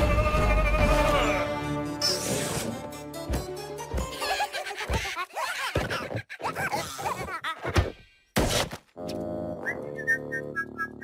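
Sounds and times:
cartoon whistling glides: 9.6 - 11.0.

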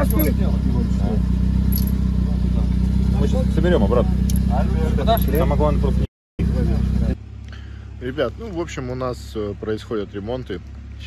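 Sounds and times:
men talking: 0.0 - 7.2, 7.9 - 11.0
low engine hum: 0.0 - 11.0.

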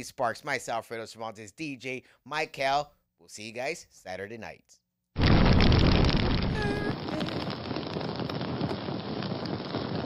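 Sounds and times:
fire crackling: 5.2 - 10.0.

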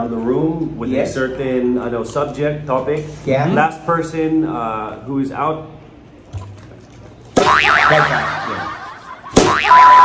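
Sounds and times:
loud comedy hit: 7.4 - 10.0
wavering sliding tone: 7.5 - 10.0.

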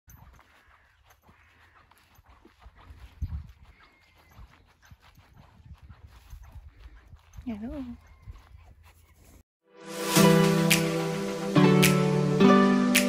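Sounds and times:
hooves thudding on grass: 0.1 - 9.4.

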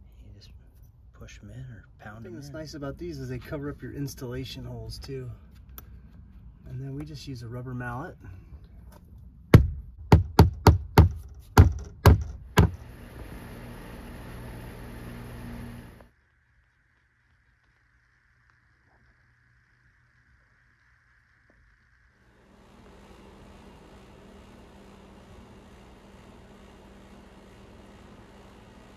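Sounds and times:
mallet knocking nail into wood: 9.5 - 12.8.

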